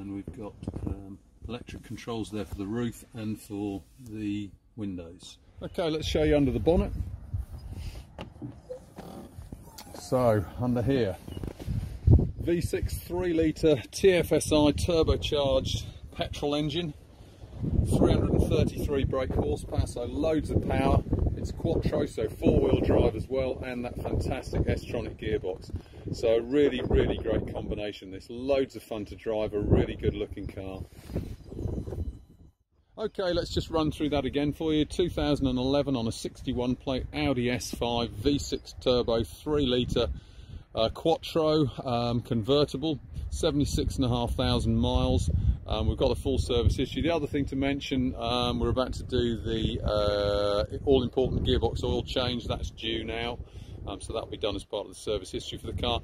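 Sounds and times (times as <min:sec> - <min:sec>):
wind rumbling on microphone: 0:00.0 - 0:56.0.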